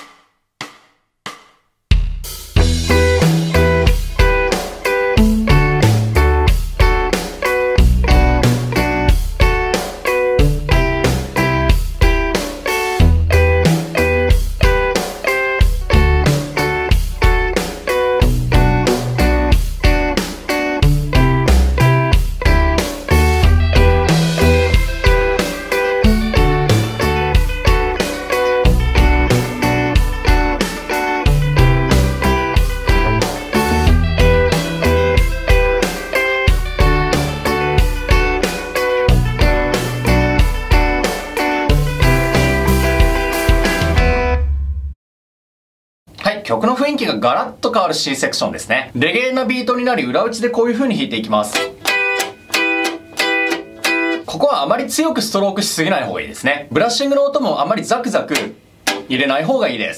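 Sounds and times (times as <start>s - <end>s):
electric guitar offbeat chords: 2.5s - 45.0s, 51.5s - 54.3s, 58.4s - 59.2s
bass line: 2.6s - 4.4s, 5.2s - 6.8s, 7.8s - 9.5s, 10.4s - 11.8s, 13.0s - 14.4s, 15.7s - 17.5s, 18.2s - 19.6s, 20.8s - 25.3s, 26.0s - 45.0s.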